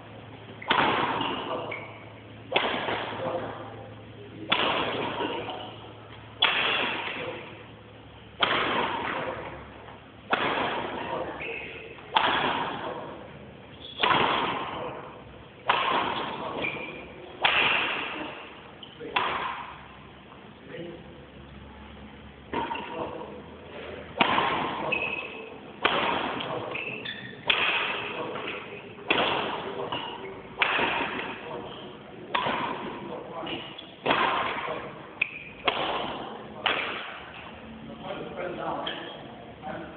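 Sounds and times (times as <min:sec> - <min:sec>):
racket smashing shuttlecock: 0:00.6 - 0:01.6, 0:02.5 - 0:03.2, 0:04.5 - 0:05.6, 0:06.4 - 0:07.6, 0:08.4 - 0:09.6, 0:10.2 - 0:13.0, 0:13.8 - 0:15.0, 0:15.6 - 0:20.0, 0:24.1 - 0:31.5, 0:32.3 - 0:37.5
short high squeak: 0:26.8 - 0:27.4.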